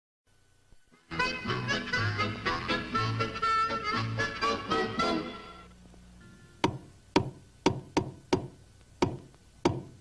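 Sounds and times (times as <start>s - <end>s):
sharp wooden knocks: 6.6s - 10.0s.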